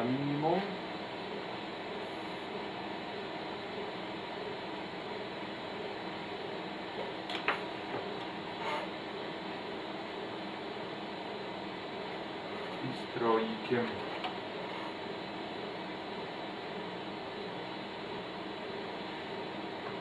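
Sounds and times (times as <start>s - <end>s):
faint hum: 0.0s - 20.0s.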